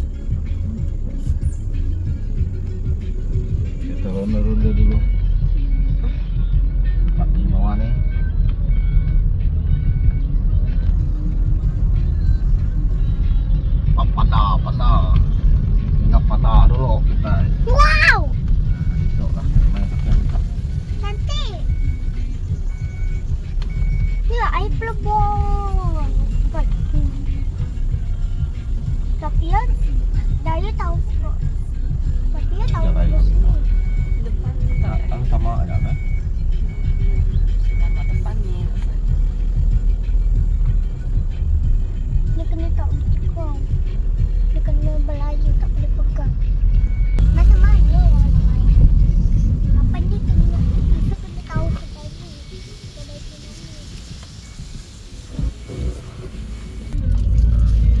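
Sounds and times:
car engine rumble and road noise: 0.0 - 58.0
voices or singing: 0.0 - 58.0
repeating high beep: 7.6 - 10.3, 32.8 - 38.4.

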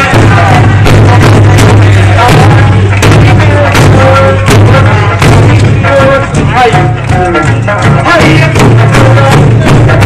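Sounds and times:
large barrel drums beaten: 0.0 - 10.0
loud folk music: 0.0 - 10.0.

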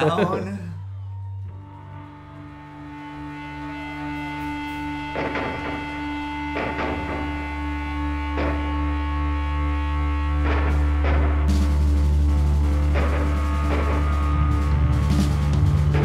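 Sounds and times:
electric guitar and bass chords: 1.5 - 16.0
drum and cymbal hits: 10.5 - 16.0.

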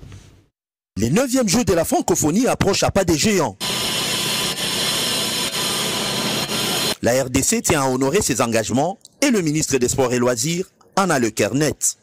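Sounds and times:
power tool running: 3.6 - 7.0.

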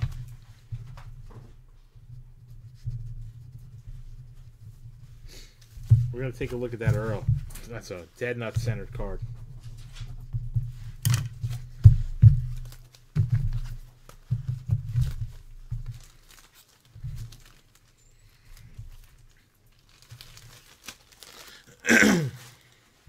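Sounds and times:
plastic bag crinkling: 11.0 - 23.0.

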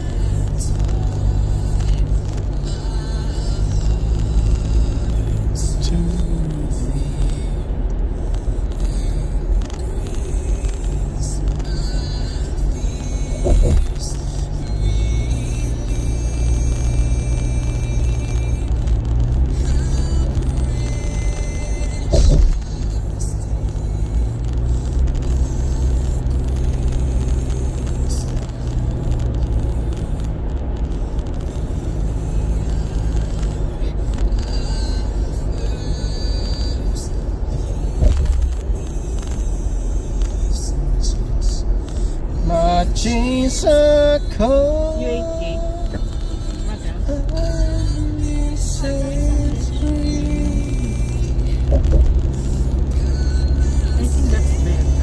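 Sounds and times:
music in a car: 0.0 - 55.0
road and engine rumble: 0.0 - 55.0
brief thumps: 13.4 - 14.0, 22.1 - 22.6.

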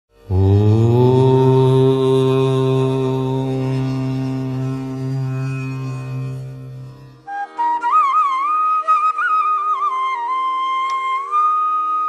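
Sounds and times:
low voice chanting: 0.3 - 7.2.

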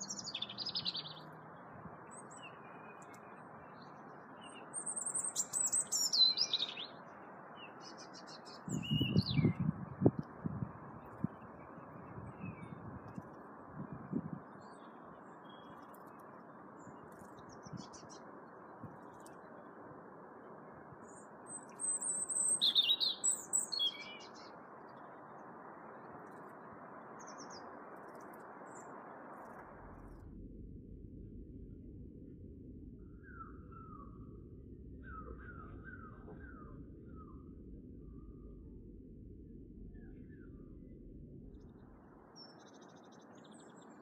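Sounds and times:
songbird trilling: 0.0 - 1.3, 4.4 - 7.0, 7.6 - 9.7, 21.1 - 24.5, 33.0 - 34.2, 35.0 - 37.4
faint steady hiss: 12.8 - 44.0
blue tits twittering: 21.1 - 24.5.

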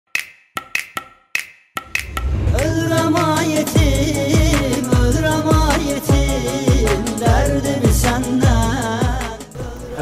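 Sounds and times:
woody percussion strikes: 0.1 - 8.6.

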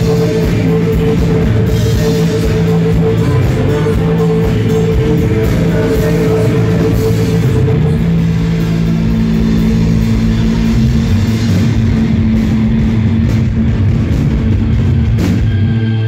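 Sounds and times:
rock band playing loudly: 0.0 - 16.0.

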